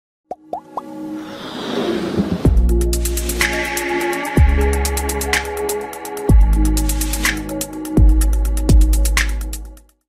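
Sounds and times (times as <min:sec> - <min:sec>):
plops gliding upward in pitch: 0:00.3 - 0:00.9.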